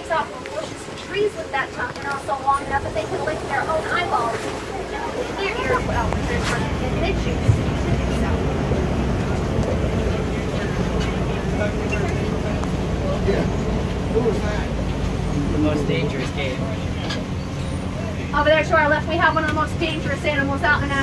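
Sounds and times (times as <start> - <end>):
truck engine and road rumble: 0.0 - 21.0.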